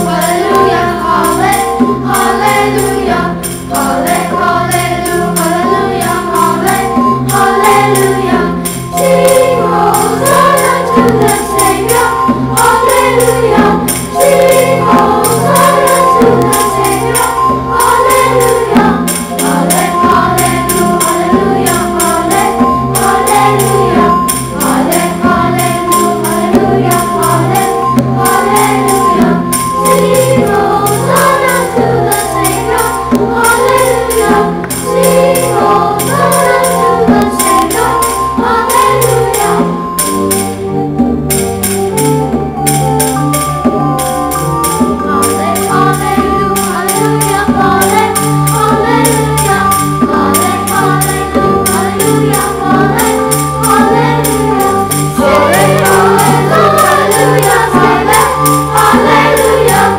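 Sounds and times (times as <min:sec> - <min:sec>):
children's choir singing a hymn: 0:00.0 - 0:59.9
crisp percussion beat: 0:00.0 - 0:59.9
held keyboard accompaniment: 0:00.0 - 0:59.9.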